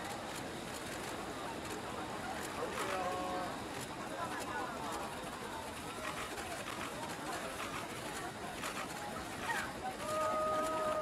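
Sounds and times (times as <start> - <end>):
outdoor background noise: 0.0 - 11.0
people's voices: 6.6 - 11.0.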